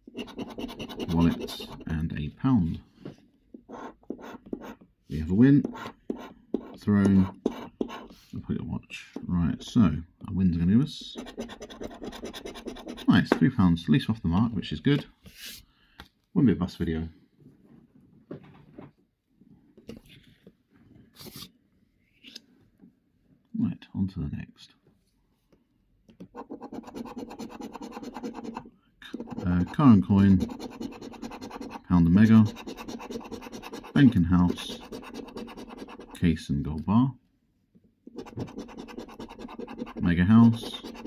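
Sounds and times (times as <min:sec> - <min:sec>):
coin scraping scratchcard: 0:38.2 - 0:41.0.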